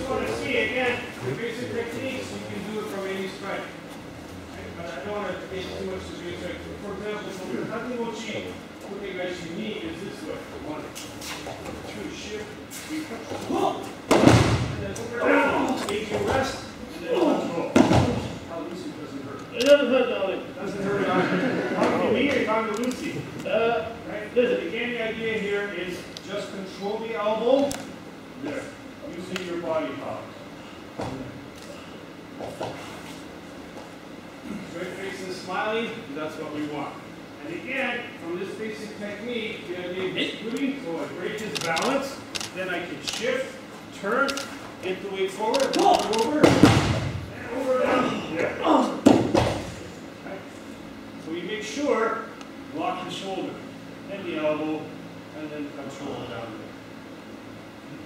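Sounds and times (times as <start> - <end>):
low voices: 0.0 - 14.0
voices talking in a hall: 0.0 - 58.0
slap on padded mat: 14.1 - 14.8, 46.4 - 47.2.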